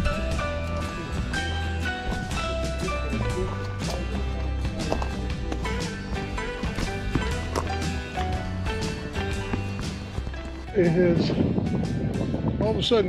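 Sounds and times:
background music with percussion: 0:00.0 - 0:12.6.

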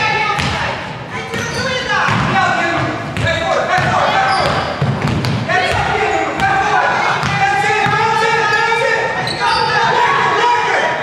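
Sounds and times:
basketball bouncing on wooden floor: 0:01.3 - 0:08.2
people shouting and calling: 0:05.4 - 0:11.0.

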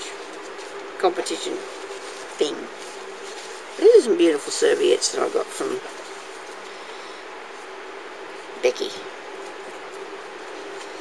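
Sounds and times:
constant low hum: 0:00.0 - 0:11.0.

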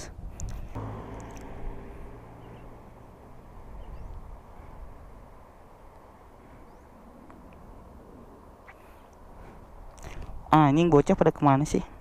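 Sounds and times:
faint bird chirps: 0:03.7 - 0:04.3, 0:06.5 - 0:07.0.

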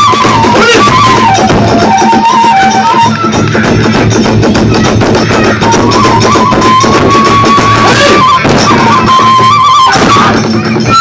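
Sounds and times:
bamboo flute: 0:00.0 - 0:11.0
drums and cymbals beating: 0:00.0 - 0:11.0.

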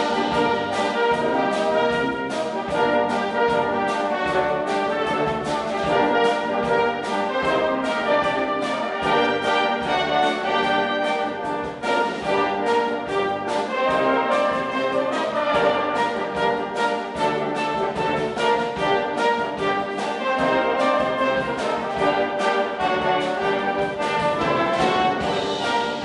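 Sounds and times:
brass band playing: 0:00.0 - 0:26.0
drum beat: 0:00.0 - 0:26.0.

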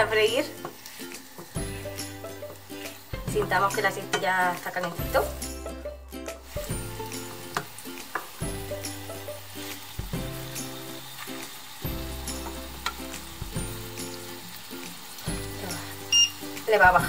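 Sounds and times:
patties sizzling in oil: 0:00.0 - 0:17.0.

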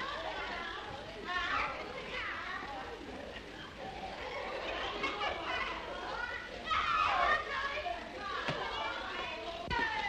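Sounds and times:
children shouting and chattering: 0:00.0 - 0:10.0.

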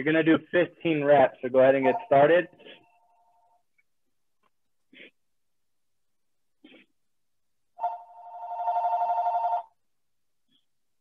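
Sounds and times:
telephone ringing: 0:07.8 - 0:09.8.

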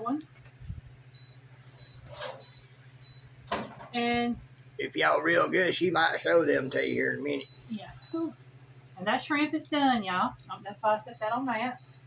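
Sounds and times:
kitchen timer beeping: 0:01.1 - 0:03.3, 0:07.3 - 0:08.3, 0:11.0 - 0:12.0.

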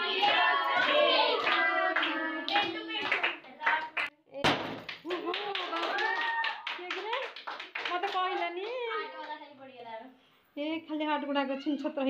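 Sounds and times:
people clapping in rhythm: 0:00.0 - 0:09.4.

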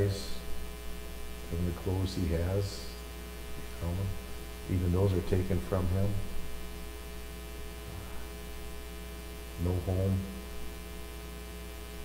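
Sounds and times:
man speaking: 0:00.0 - 0:00.5, 0:01.5 - 0:03.0, 0:03.7 - 0:06.4, 0:09.6 - 0:10.4
steady electrical hum: 0:00.0 - 0:12.0.

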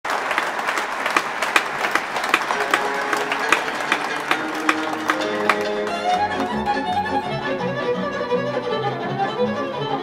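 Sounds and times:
audience clapping along: 0:00.0 - 0:07.4.

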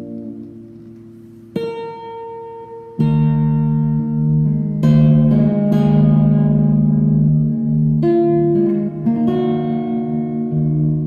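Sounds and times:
electric guitar fingerstyle notes: 0:00.0 - 0:11.0.

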